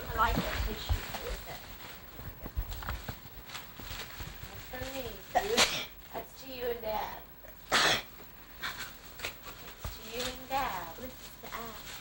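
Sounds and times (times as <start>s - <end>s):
tissue paper crinkling: 0.0s - 6.3s, 8.6s - 12.0s.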